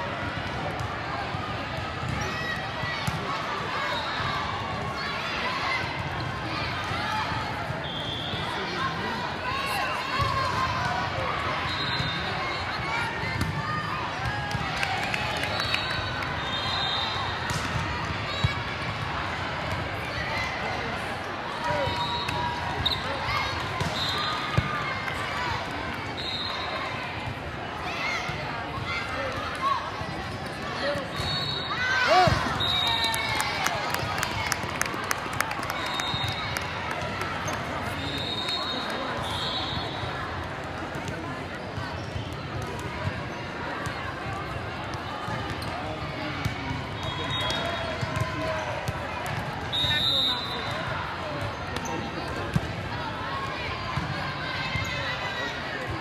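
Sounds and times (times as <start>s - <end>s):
players and spectators voices: 0.0s - 56.0s
volleyball hits: 17.4s - 18.7s.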